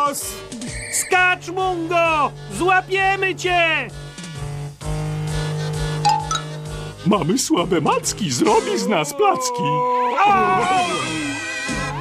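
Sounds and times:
background music: 0.0 - 12.0
cartoon cat yelling: 8.6 - 11.1.

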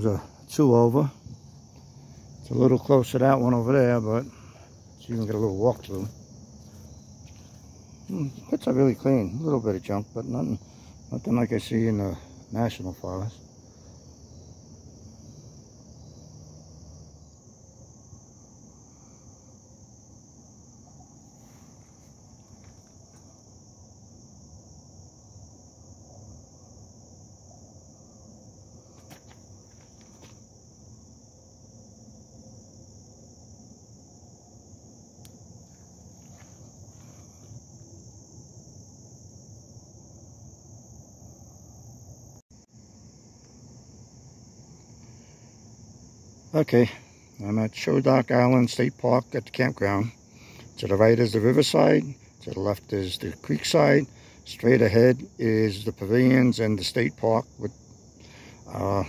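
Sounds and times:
insects trilling: 0.0 - 59.0.

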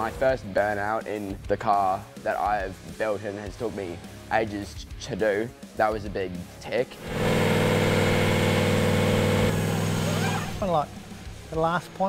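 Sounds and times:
diesel engine at high revs: 6.9 - 11.6.

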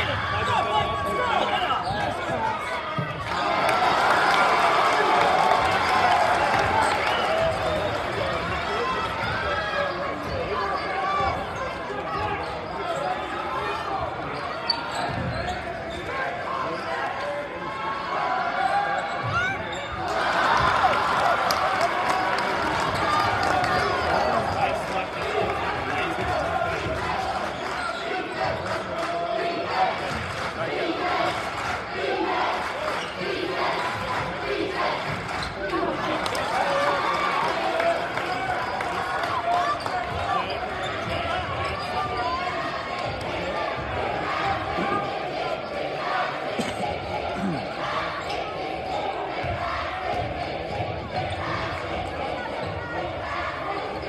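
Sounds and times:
crowd murmuring and calling: 0.0 - 54.0.

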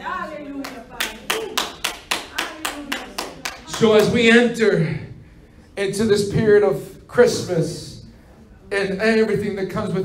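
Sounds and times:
hands clapping: 0.6 - 4.3.

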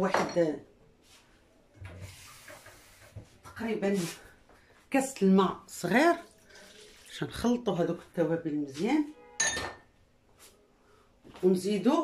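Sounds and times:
kitchenware clink: 9.4 - 9.9.

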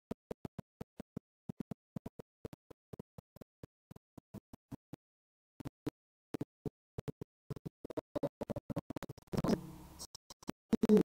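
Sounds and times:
crackling microphone static: 7.6 - 11.0
low buzz: 9.4 - 10.0.

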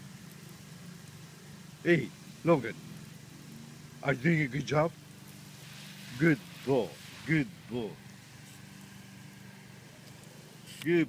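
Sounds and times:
low steady hum: 0.0 - 10.7
hose spraying water: 0.0 - 11.0.

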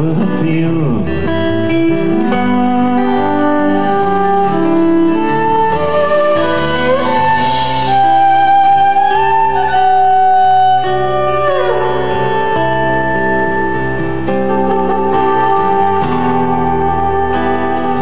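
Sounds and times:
acoustic guitar accompaniment: 0.0 - 18.0
fiddle playing slow melody: 0.8 - 18.0.

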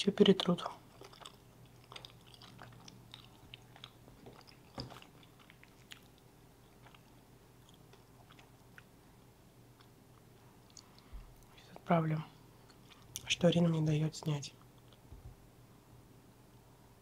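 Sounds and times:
chewing flaky pastry: 0.0 - 11.9, 12.6 - 13.4.

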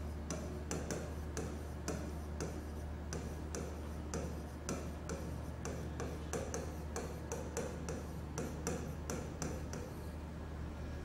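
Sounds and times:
steady low hum: 0.0 - 11.0
pen ticking and scraping on board: 0.2 - 10.0.

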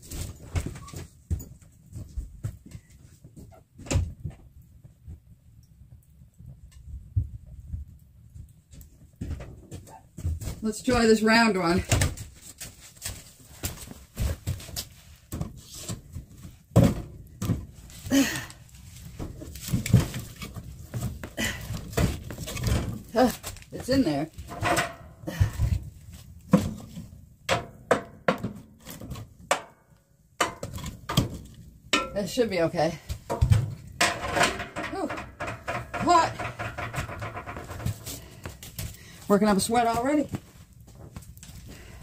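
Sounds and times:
firewood knocking against steel firebox: 26.5 - 29.8, 30.4 - 32.4, 33.1 - 38.7
metal poker pushing log: 34.0 - 38.3.

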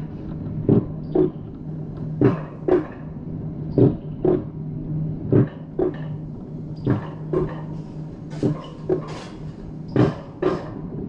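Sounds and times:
coaster wheels humming on track: 0.0 - 11.0
wheels clacking over rail joints: 5.3 - 10.9.

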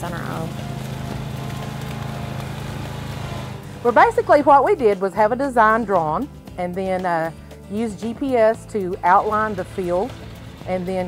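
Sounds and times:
mower engine droning: 0.0 - 6.2, 7.8 - 11.0.

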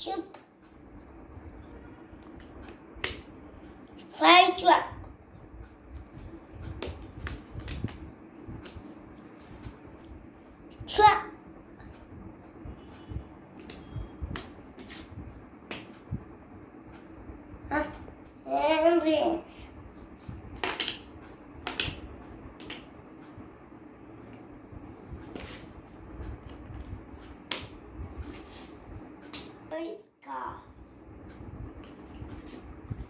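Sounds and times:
wooden puzzle pieces knocking: 20.6 - 22.0.

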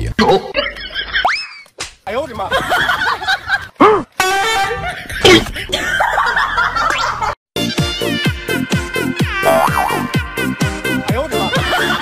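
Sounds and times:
laughter: 0.5 - 1.6, 2.4 - 3.8, 4.7 - 7.4, 11.4 - 12.0
boing sound effect: 9.4 - 10.1.

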